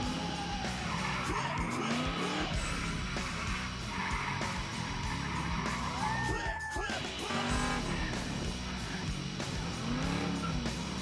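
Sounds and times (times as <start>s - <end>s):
car engine revving: 0.0s - 6.4s, 7.0s - 11.0s
tyres squealing: 0.0s - 9.0s
rock music with electric guitar: 0.0s - 11.0s.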